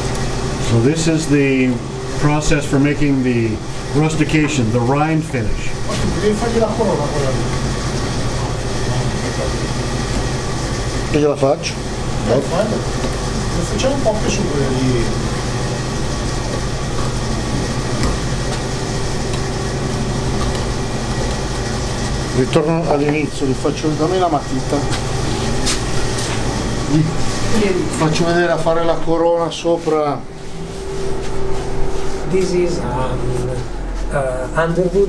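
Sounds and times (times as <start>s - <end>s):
low machine hum: 0.0s - 35.0s
people talking: 0.7s - 7.6s, 8.4s - 9.7s, 11.1s - 12.9s, 13.5s - 15.2s, 22.3s - 25.0s, 26.9s - 30.3s, 32.2s - 35.0s.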